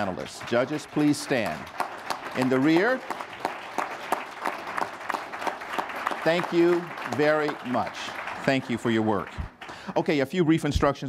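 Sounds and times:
audience applauding: 0.0 - 10.3.

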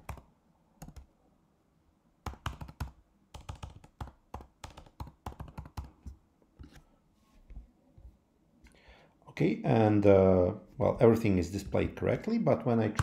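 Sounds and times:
keyboard typing clicks: 0.0 - 1.1, 2.2 - 6.0.

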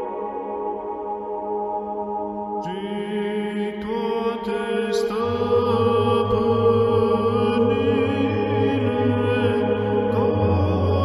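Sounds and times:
chant-like ambient music: 0.0 - 11.0
low drone: 5.1 - 11.0.

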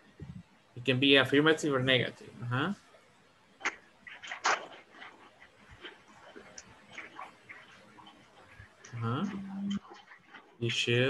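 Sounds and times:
call connection background noise: 3.6 - 11.0.

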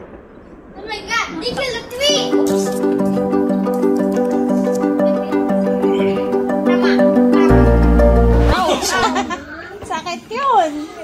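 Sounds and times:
high-pitched excited voices: 1.9 - 8.8
music of short repeated notes: 2.2 - 8.6.

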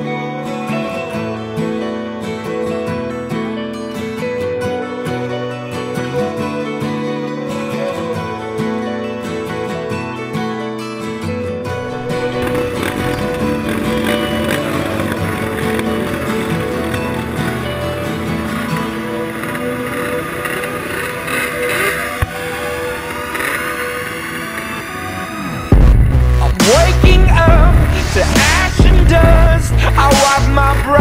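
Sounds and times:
background music: 0.0 - 31.0
atv engines running: 11.8 - 31.0
engine revving: 11.8 - 31.0.

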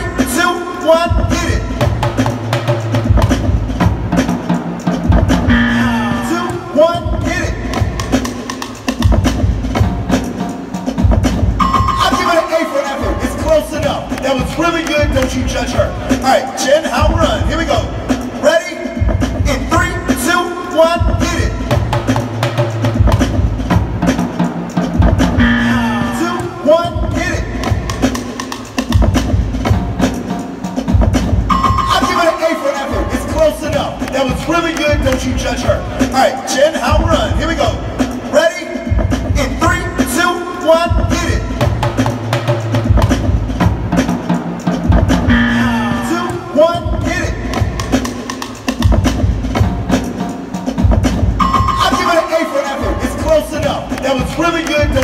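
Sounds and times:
drums beaten with sticks: 0.0 - 55.0
loud backing music: 0.0 - 55.0.

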